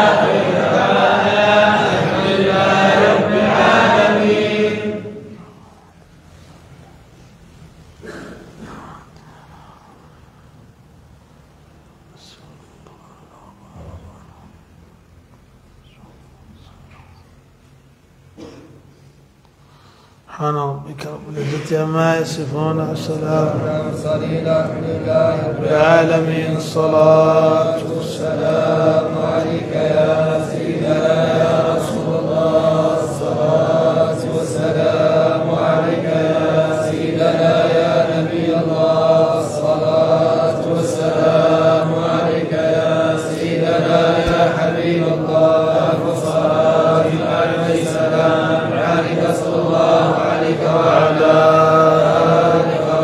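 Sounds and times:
men chanting together: 0.0 - 5.6, 21.1 - 53.0
sustained drone: 0.0 - 17.6, 19.7 - 53.0.

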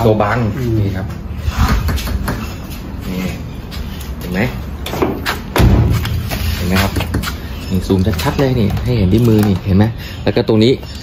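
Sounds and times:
men talking: 0.0 - 1.4, 3.0 - 4.8, 6.3 - 11.0
dull heavy thump: 5.6 - 6.5.

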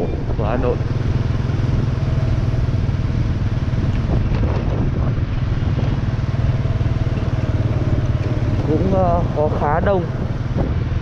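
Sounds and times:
motorbike engine running: 0.0 - 11.0.

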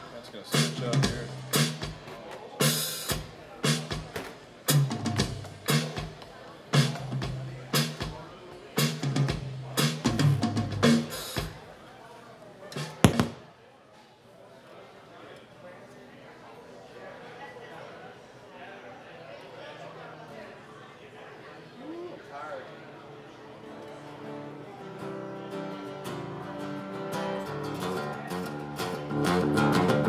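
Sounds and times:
faint crowd murmur: 0.0 - 30.0
live band playing: 0.5 - 8.1, 8.7 - 11.6.

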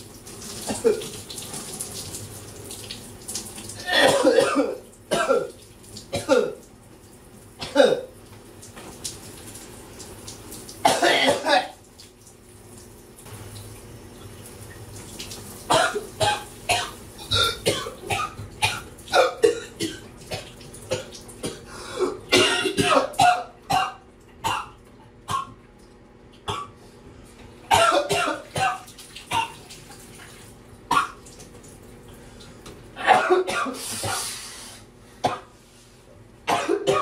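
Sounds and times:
shower water running: 0.0 - 22.3, 28.3 - 33.1, 33.7 - 34.9
man coughing: 3.8 - 5.5, 7.6 - 8.1, 10.9 - 11.8, 20.9 - 24.0, 27.7 - 28.8, 33.0 - 34.4, 36.5 - 37.0.

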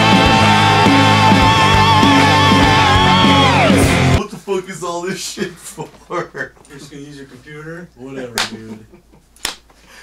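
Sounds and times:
finger snaps: 9.4 - 9.7.

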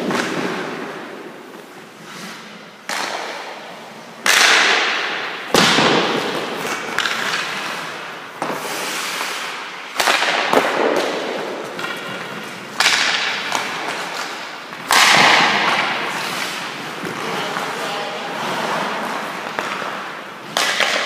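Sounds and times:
hockey sticks striking pucks: 0.0 - 21.0.

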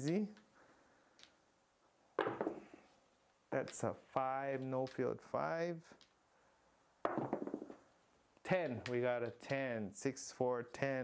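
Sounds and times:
dice clattering on a table: 2.2 - 2.7, 7.0 - 7.8.

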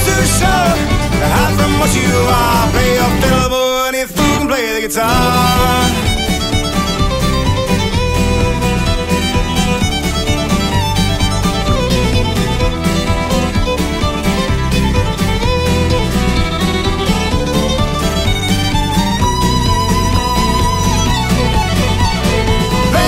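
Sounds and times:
bass line: 0.0 - 3.6, 4.2 - 23.0
fiddle melody: 0.0 - 23.0
strummed acoustic guitar: 0.0 - 23.0.

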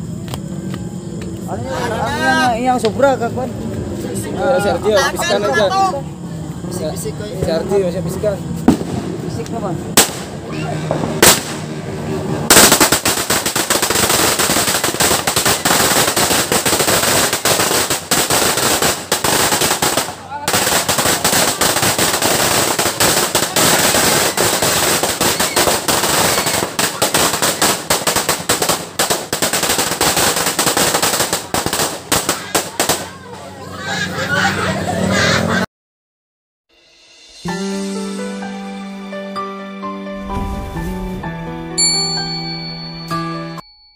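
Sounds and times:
firecracker string crackling: 8.5 - 33.4.

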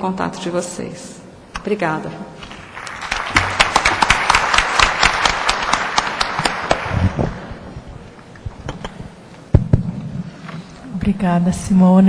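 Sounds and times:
audience applauding: 2.6 - 7.7.

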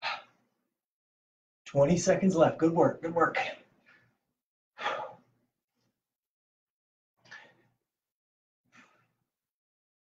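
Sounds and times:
man breathing out heavily: 0.0 - 0.4, 4.8 - 5.4.

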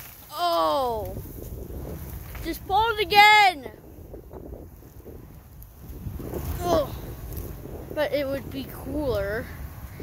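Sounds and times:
wind buffeting microphone: 0.2 - 10.0.

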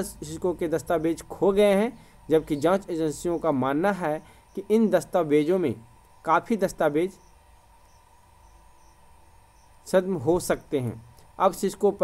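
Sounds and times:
man narrating: 0.0 - 7.2, 9.8 - 12.0
thin high whine: 0.0 - 12.0.

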